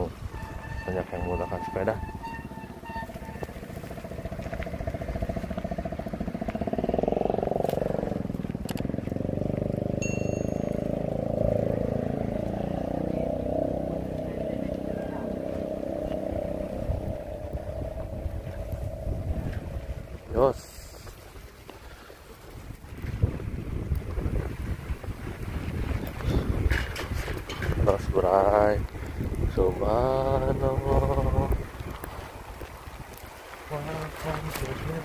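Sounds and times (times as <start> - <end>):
tyres rolling on slushy road: 0.0 - 35.0
wind rushing over microphone: 0.0 - 35.0.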